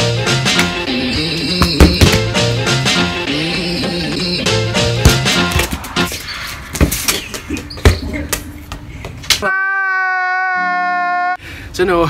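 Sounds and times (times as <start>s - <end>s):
music: 0.0s - 6.2s
held crying wail: 9.4s - 11.4s.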